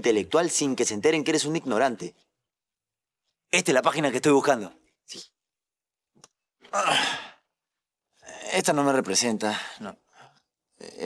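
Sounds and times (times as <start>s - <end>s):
man sighing: 6.7s - 7.4s.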